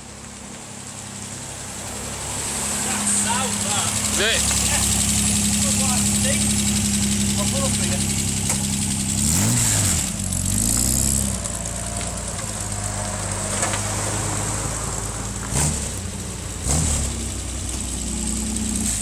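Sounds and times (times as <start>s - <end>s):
engine throttle blips: 0.0s - 19.0s
engine revving: 1.3s - 19.0s.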